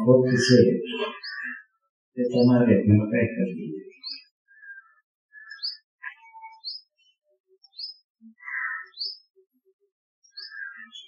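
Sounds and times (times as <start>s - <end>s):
lower bird calls: 0.0s - 1.8s, 3.8s - 9.3s, 10.2s - 11.0s
high rising bird chirp: 0.4s - 1.7s, 3.9s - 9.4s, 10.2s - 11.0s.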